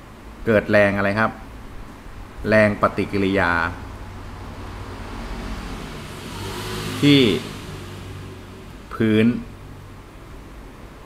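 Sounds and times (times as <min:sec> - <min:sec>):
steady low hum: 0:00.0 - 0:06.6, 0:07.2 - 0:11.0.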